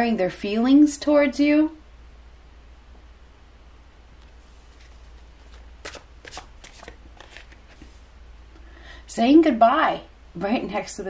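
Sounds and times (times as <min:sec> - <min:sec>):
cards being shuffled: 0:04.2 - 0:08.0.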